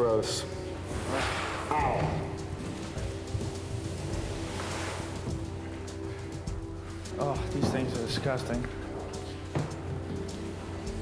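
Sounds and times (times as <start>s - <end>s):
background music low tones: 0.0s - 11.0s.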